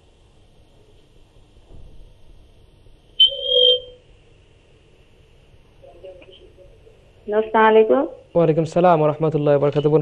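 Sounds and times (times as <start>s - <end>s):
high-pitched electronic beep: 3.2s - 4.0s.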